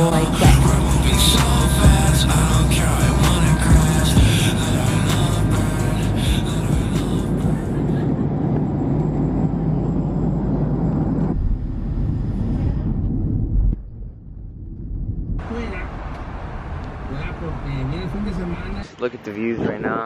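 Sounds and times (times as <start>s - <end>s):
airliner cabin rumble: 0.0s - 20.0s
music with a beat: 0.1s - 7.4s.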